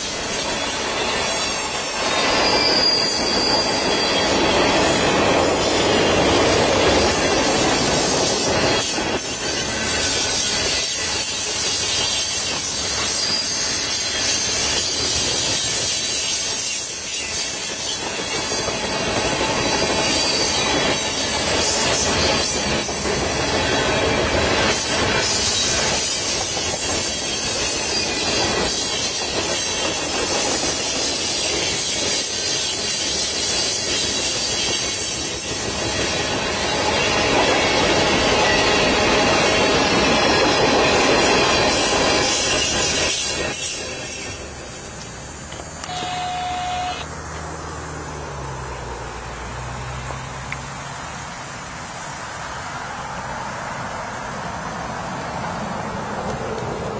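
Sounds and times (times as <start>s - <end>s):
clickety-clack over rail joints: 0.0s - 46.0s, 55.4s - 56.9s
freight train wheels rumbling: 0.0s - 50.2s, 51.1s - 56.9s.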